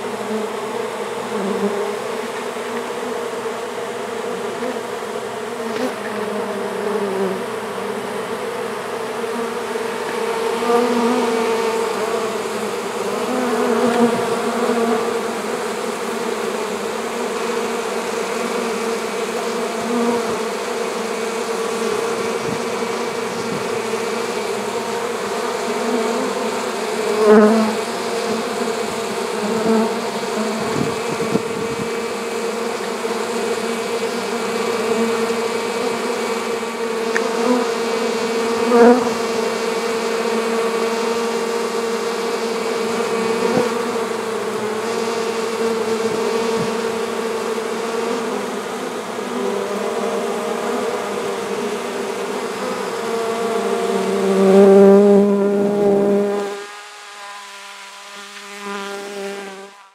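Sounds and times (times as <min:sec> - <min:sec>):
honeybees buzzing: 0:00.0 - 0:59.9.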